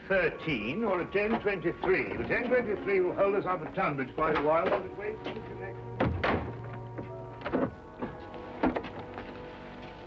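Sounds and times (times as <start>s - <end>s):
background music low sustained note: 0.0s - 10.0s.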